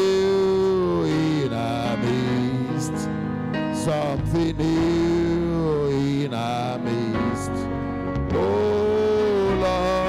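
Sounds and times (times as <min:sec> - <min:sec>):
man singing into a microphone: 0:00.0 - 0:10.0
sustained musical accompaniment: 0:00.0 - 0:10.0.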